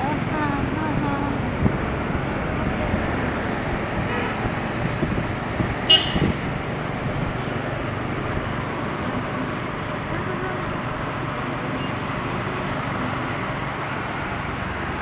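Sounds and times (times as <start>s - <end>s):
road and traffic noise: 0.0s - 15.0s
wind on microphone: 0.6s - 8.8s
horn beep: 5.9s - 6.3s.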